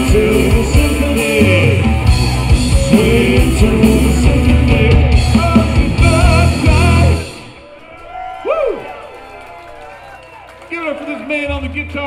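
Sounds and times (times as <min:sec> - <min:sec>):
crowd cheering: 0:07.0 - 0:12.0.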